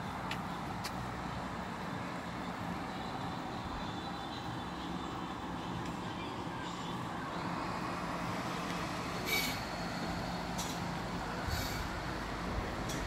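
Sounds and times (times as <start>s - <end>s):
construction machinery engine: 0.0s - 13.0s.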